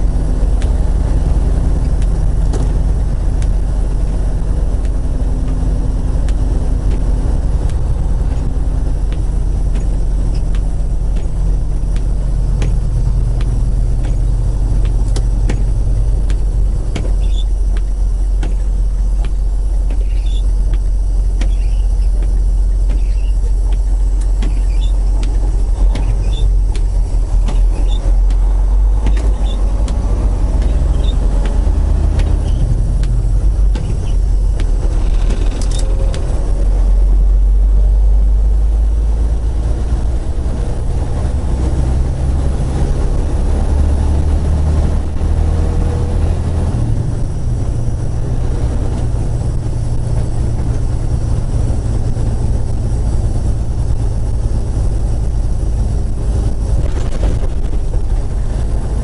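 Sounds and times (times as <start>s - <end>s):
diesel engine rumble: 0.0s - 59.0s.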